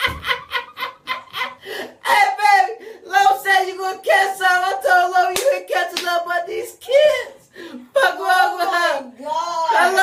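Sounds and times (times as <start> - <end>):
sharp clap: 5.3 - 6.2.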